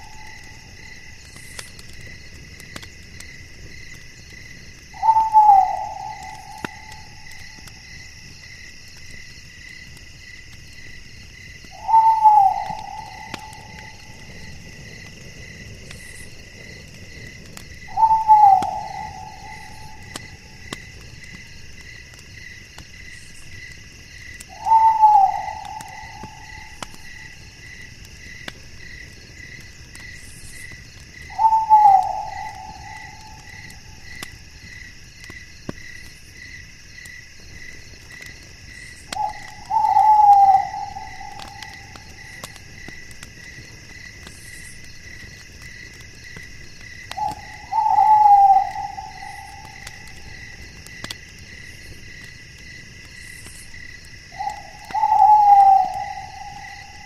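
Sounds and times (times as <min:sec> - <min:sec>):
crickets and insects trilling: 0:00.0 - 0:57.0
insect pulsing slowly: 0:00.0 - 0:57.0
loud falling animal call: 0:11.8 - 0:14.0, 0:24.5 - 0:26.8, 0:31.3 - 0:33.7, 0:39.2 - 0:42.3, 0:47.2 - 0:50.1, 0:54.4 - 0:57.0.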